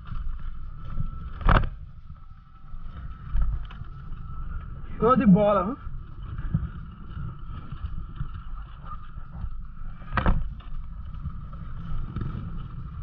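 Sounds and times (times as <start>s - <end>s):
dirt bike engine at low revs: 0.0s - 13.0s
wind rumbling on microphone: 0.0s - 13.0s.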